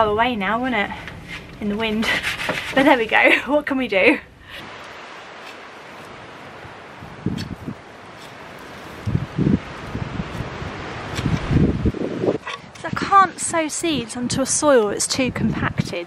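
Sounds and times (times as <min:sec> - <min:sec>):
garden tool scraping soil: 0:01.2 - 0:03.2, 0:04.8 - 0:06.4, 0:07.3 - 0:11.5
wind hiss: 0:04.0 - 0:16.0.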